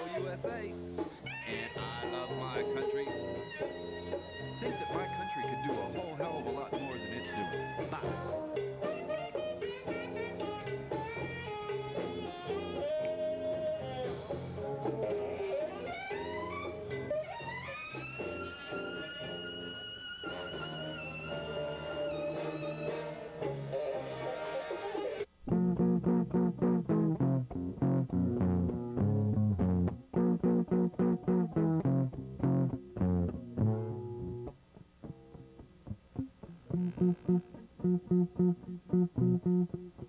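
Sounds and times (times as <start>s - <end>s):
low plucked notes: 0.0s - 23.6s, 25.5s - 40.0s
guitar and bass music: 0.0s - 40.0s.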